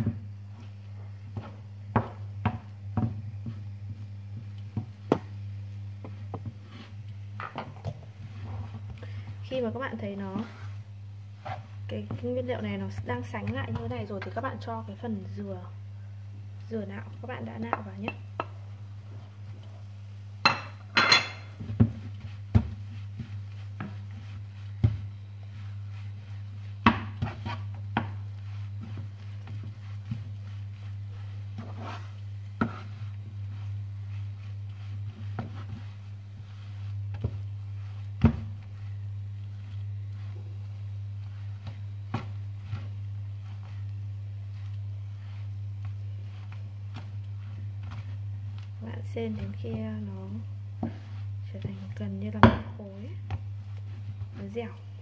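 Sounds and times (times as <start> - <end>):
spatula scraping frying pan: 10.2 - 12.3, 20.5 - 49.7, 50.8 - 52.0.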